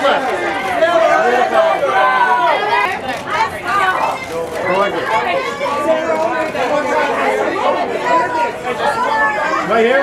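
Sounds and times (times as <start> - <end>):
photographers shouting: 0.0 - 10.0.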